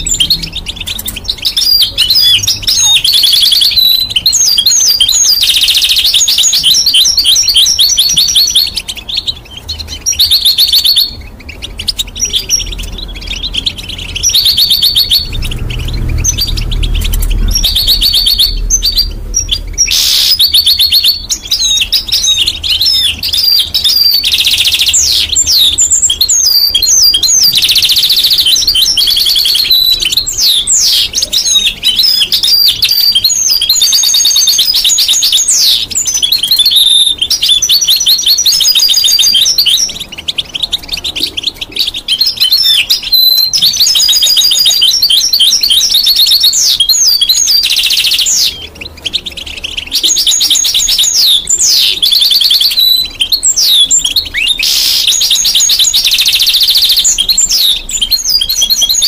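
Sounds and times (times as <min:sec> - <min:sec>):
goldfinch twittering song: 0:00.0 - 0:59.0.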